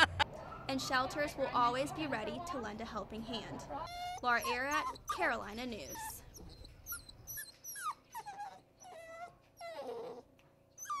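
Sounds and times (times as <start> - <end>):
puppy whining and yipping: 3.8 - 11.0.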